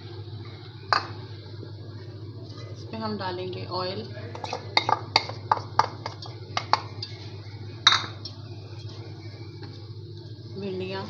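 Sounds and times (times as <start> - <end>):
steady low hum: 0.0 - 11.0
bowl and spatula knocking on wok: 4.4 - 7.0, 7.8 - 8.2.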